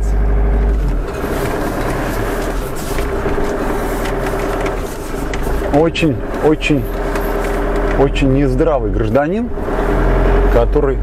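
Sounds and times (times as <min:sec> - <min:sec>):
engine and road noise drone: 0:00.0 - 0:11.0.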